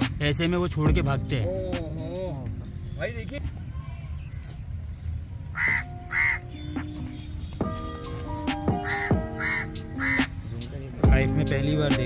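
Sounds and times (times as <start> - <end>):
background music: 0.0 - 3.8, 4.8 - 12.0
harsh bird calls: 1.0 - 11.8.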